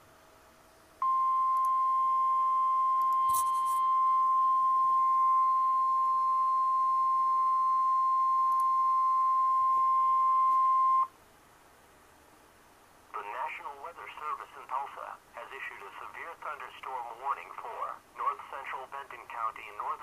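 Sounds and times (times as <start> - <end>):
steady alarm tone: 3.2 - 8.3.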